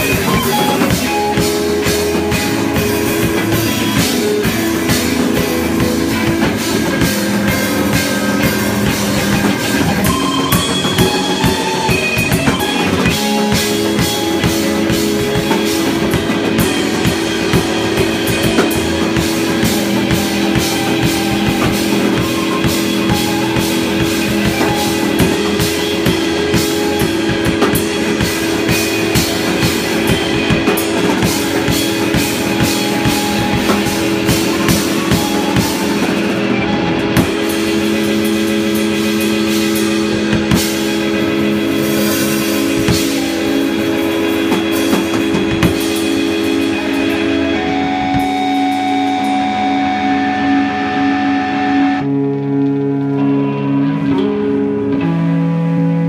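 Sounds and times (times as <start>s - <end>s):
drum kit: 0.0s - 53.2s
live rock band playing: 0.0s - 56.0s
ringing electric guitar notes: 0.0s - 56.0s.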